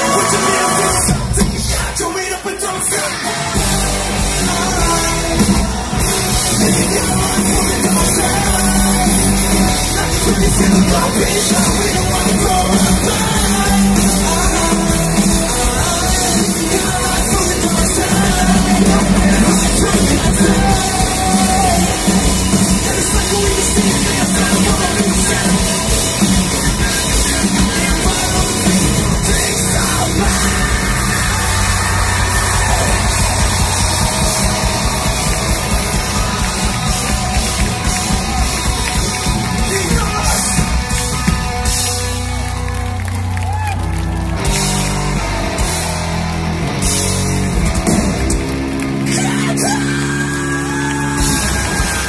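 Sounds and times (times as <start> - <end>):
rock band playing live: 0.0 - 52.0.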